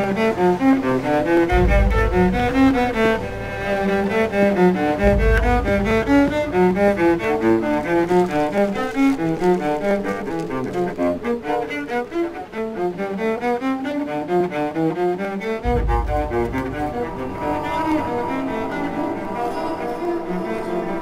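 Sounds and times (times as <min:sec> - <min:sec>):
cello playing flowing run: 0:00.0 - 0:21.0
deep low boom: 0:00.8 - 0:11.3, 0:15.6 - 0:21.0
higher held tone: 0:15.7 - 0:21.0.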